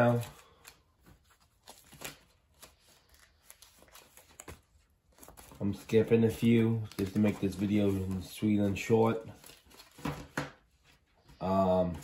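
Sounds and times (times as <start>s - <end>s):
plastic sleeve pages rustling: 0.0s - 12.0s.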